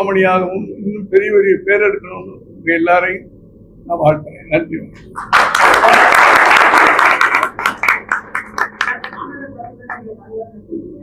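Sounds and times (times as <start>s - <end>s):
small group applauding: 5.1s - 10.1s.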